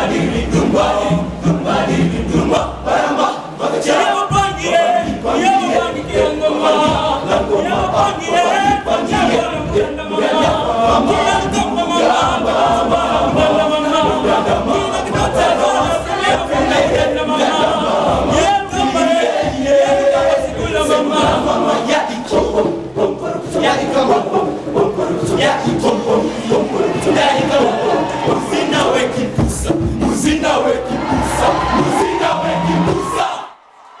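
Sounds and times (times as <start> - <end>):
boys' choir singing a cappella: 0.0 - 33.6.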